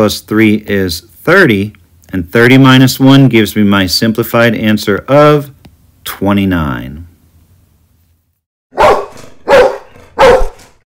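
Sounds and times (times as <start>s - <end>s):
dog barking: 8.7s - 10.7s.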